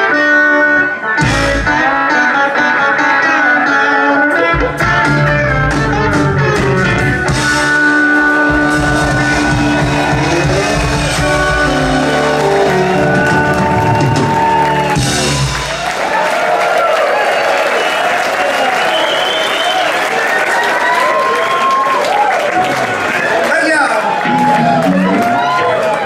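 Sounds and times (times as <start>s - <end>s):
rock band closing chord: 4.3s - 16.1s
audience applause and cheering: 6.8s - 26.0s
audience whistling: 8.2s - 23.4s.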